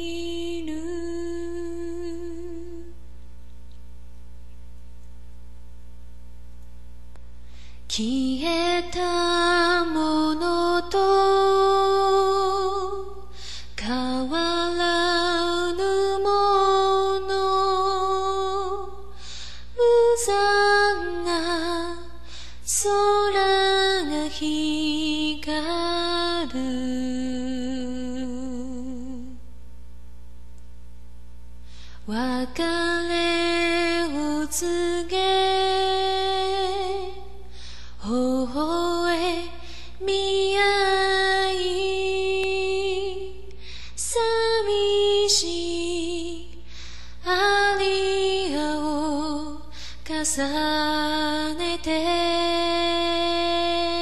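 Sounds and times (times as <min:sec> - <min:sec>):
woman singing a long note: 0:00.0 - 0:03.1, 0:07.9 - 0:19.2, 0:19.8 - 0:29.5, 0:32.0 - 0:46.6, 0:47.2 - 0:54.0.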